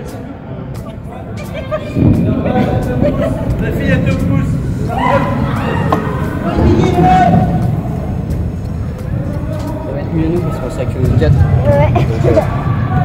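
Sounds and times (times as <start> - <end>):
indistinct chatter: 0.0 - 13.0
low background din: 0.0 - 13.0.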